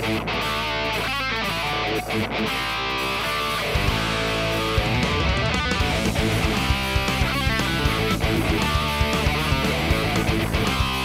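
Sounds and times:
electric guitar rock riff: 0.0 - 11.0.

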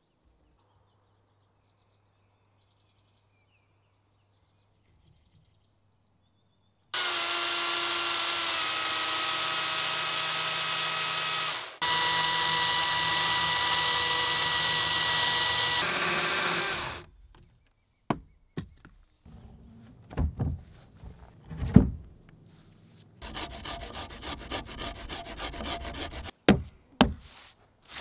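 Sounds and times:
electric chainsaw cutting log: 7.0 - 17.1.

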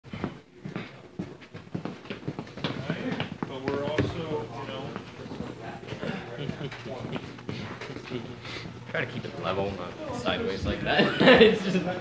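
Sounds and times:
people talking: 2.6 - 12.0.

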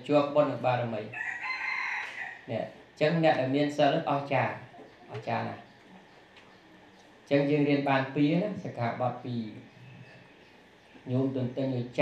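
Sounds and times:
rooster crowing: 1.1 - 2.6.

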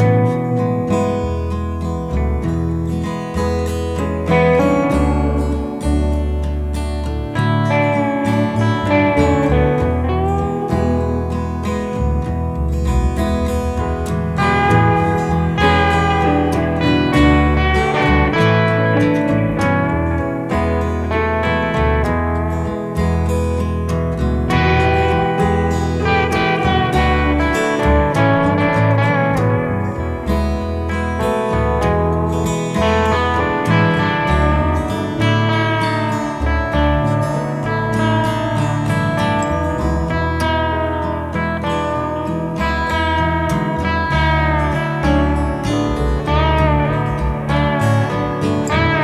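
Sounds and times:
guitar accompaniment: 0.0 - 49.0
low bass notes: 0.0 - 49.0
slide guitar lead: 0.0 - 49.0.

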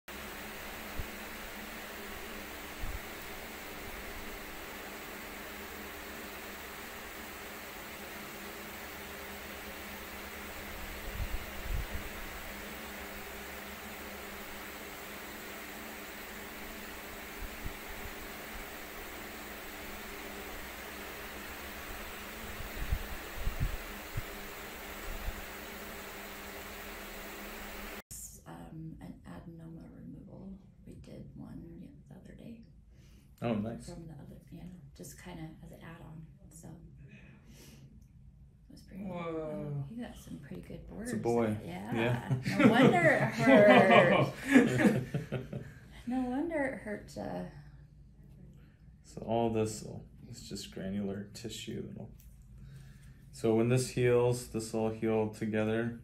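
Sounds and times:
fan-like hiss: 0.1 - 28.0, 39.4 - 47.5, 49.1 - 56.0
faint hum: 0.1 - 56.0.

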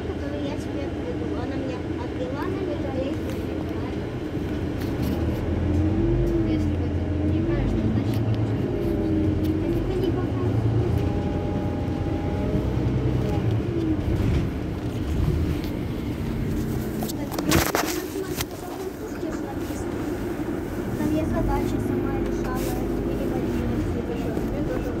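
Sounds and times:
bus engine idling: 0.0 - 25.0.

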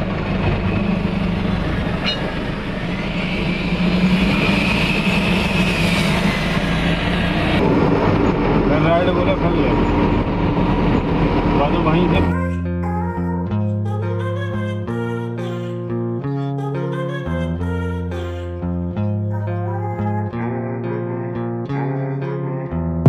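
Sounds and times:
diesel truck engine droning: 0.0 - 12.6.

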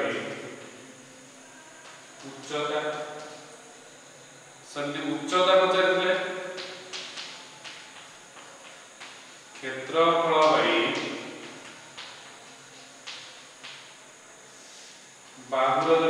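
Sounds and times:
man speaking: 2.3 - 3.2, 9.6 - 11.2, 15.4 - 16.0.

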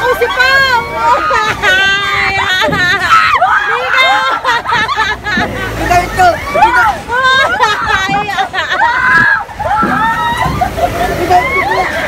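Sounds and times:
faint low rumble of ride: 0.0 - 12.0
riders yelling and talking: 0.0 - 12.0.

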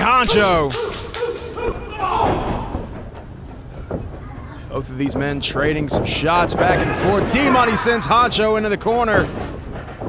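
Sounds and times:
slaps: 0.3 - 2.9
person shouting: 1.6 - 2.8.

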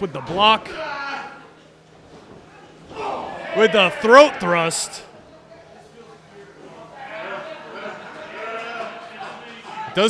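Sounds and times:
distant shouts in a hall: 0.0 - 10.0.

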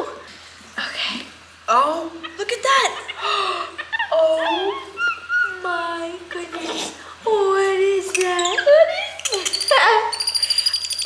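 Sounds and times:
monkey giving whining calls: 4.2 - 5.7, 8.2 - 11.0.

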